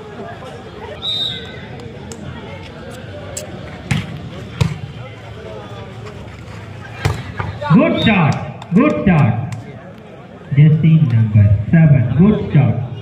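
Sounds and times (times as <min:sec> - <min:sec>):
spectators chattering: 0:00.0 - 0:13.0
high whistle: 0:01.0 - 0:01.6.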